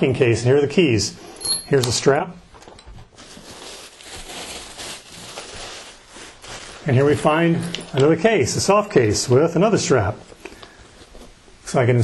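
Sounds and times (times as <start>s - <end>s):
plastic bag crinkling: 3.1s - 9.1s.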